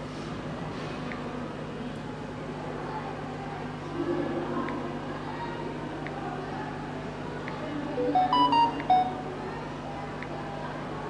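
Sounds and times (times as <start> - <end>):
phone electronic jingle: 8.0 - 9.3.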